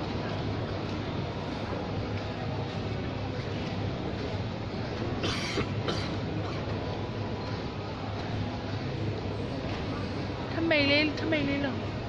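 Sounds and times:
busy indoor mall din: 0.0s - 12.0s.

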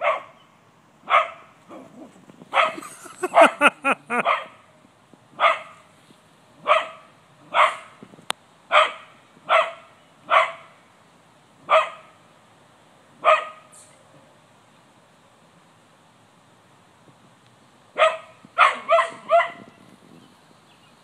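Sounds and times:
dog barking: 0.0s - 0.4s, 1.1s - 1.9s, 2.5s - 4.6s, 5.4s - 5.8s, 6.6s - 7.9s, 8.7s - 10.8s, 11.7s - 12.2s, 13.2s - 13.7s, 18.0s - 19.7s.

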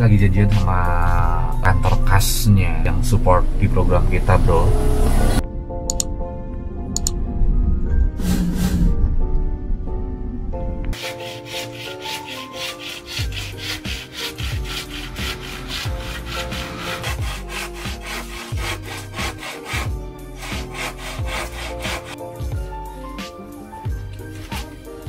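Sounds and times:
background music with kick drum: 10.9s - 25.0s
hand saw cutting bamboo: 11.0s - 22.2s, 24.4s - 24.8s.

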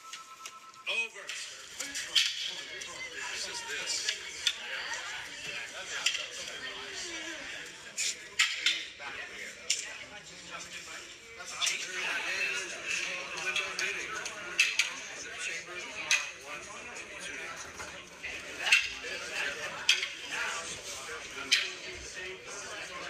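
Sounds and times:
murmur of voices: 0.0s - 23.0s.

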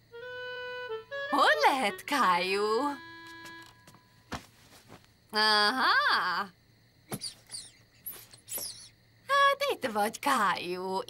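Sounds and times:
soft background music: 0.1s - 4.1s.

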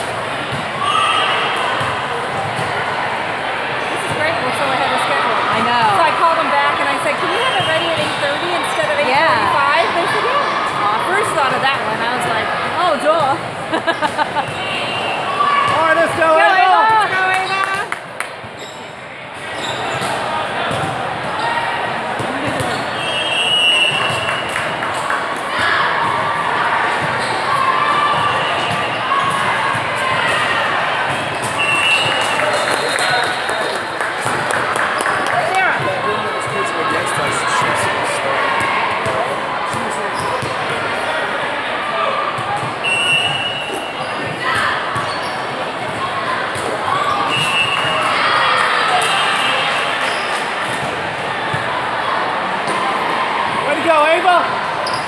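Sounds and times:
echoing hubbub of voices: 0.0s - 55.0s
referee whistle blasts: 22.9s - 24.4s, 31.5s - 33.5s, 42.8s - 44.0s, 47.2s - 48.1s.

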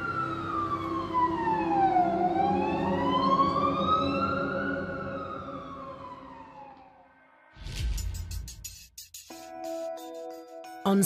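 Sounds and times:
wailing siren: 0.0s - 7.6s.

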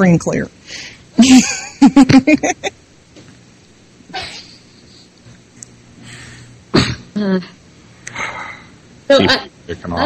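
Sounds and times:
faint steady hum: 0.0s - 10.0s
person clearing throat: 6.7s - 7.2s
person speaking: 9.1s - 10.0s.

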